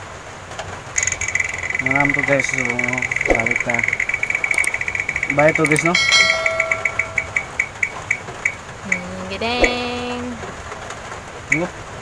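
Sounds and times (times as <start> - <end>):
electronic tone: 1.0 - 7.8
app wheel ticking: 1.0 - 10.3, 11.5 - 11.7.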